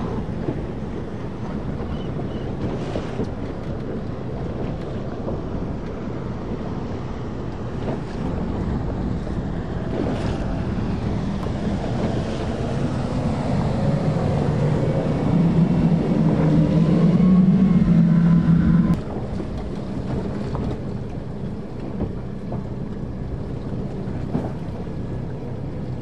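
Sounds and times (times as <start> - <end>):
rushing water: 0.0 - 26.0
wind buffeting microphone: 0.0 - 26.0.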